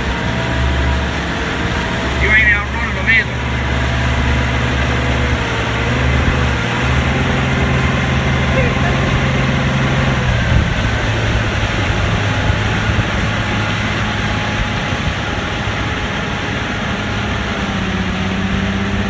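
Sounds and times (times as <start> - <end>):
outboard motor running: 0.0 - 19.0
rush of boat wake: 0.0 - 19.0.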